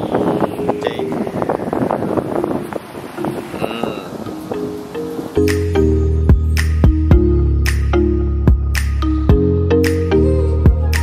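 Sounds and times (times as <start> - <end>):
wind buffeting microphone: 0.0 - 7.6.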